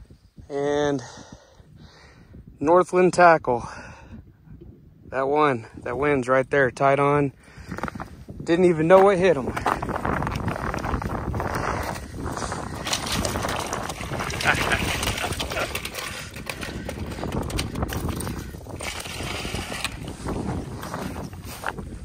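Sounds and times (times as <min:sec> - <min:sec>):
fish scraping on ice: 0:09.6 - 0:21.7.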